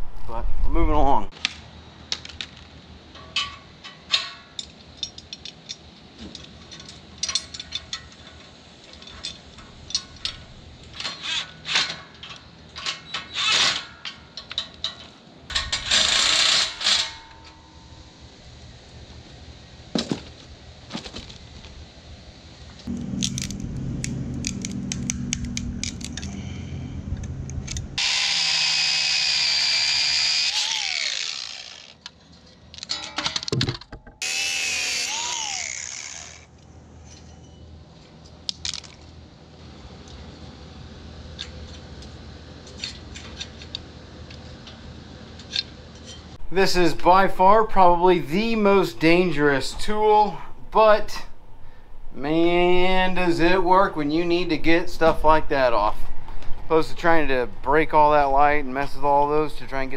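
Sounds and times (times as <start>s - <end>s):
angle grinder cutting bolts: 15.5s - 17.3s, 28.0s - 32.0s, 34.2s - 36.5s
metal hardware clanking: 32.7s - 34.1s.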